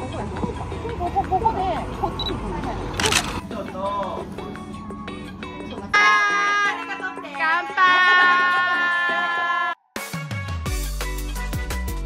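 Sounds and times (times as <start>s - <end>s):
women chatting: 0.0s - 3.2s
low street rumble: 0.0s - 7.6s.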